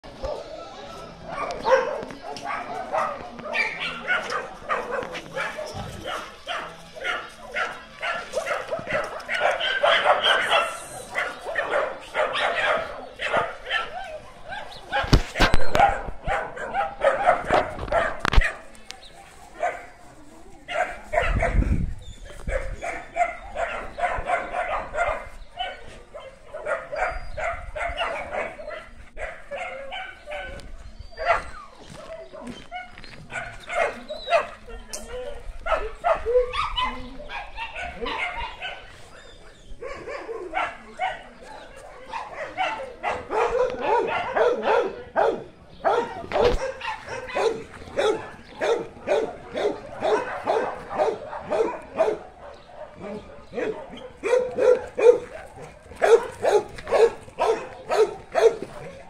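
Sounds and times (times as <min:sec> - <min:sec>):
dogs barking: 0:00.0 - 0:18.8, 0:19.5 - 0:20.0, 0:20.7 - 0:59.0.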